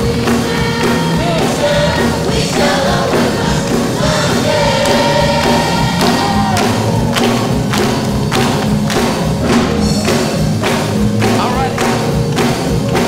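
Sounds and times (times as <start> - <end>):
youth choir singing: 0.0 - 10.5
instrumental accompaniment: 0.0 - 13.0
hand claps: 2.3 - 13.0.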